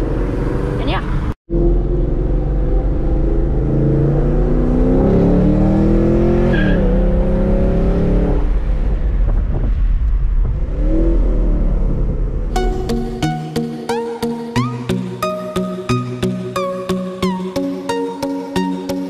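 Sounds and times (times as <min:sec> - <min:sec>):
car engine accelerating: 0:00.0 - 0:13.6.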